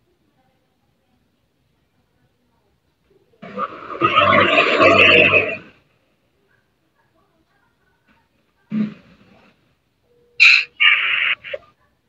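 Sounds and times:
rough noisy burst: 3.4s - 5.8s.

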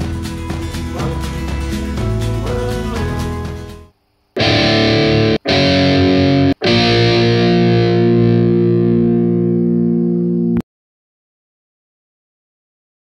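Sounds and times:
distorted electric guitar chords: 0.0s - 10.6s.

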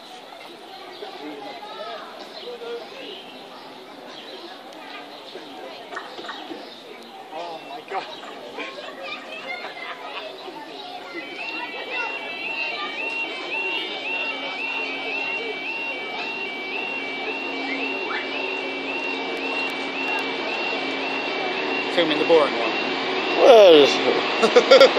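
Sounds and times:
diesel train engine and wheels: 0.0s - 24.9s
warbling electronic alarm: 11.0s - 24.9s.

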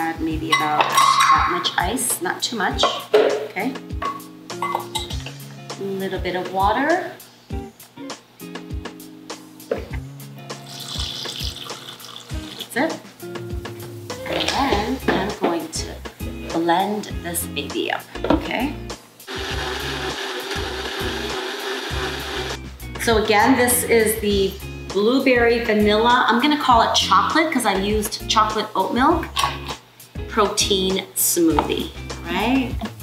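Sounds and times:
background music with held notes: 0.0s - 33.0s
blender running: 19.3s - 22.6s.

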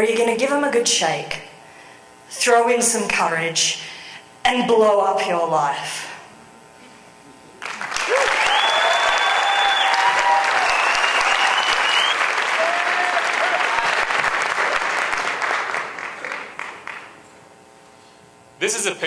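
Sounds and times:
audience applauding: 7.6s - 17.2s
shrill whistles and whoops: 8.0s - 13.9s.

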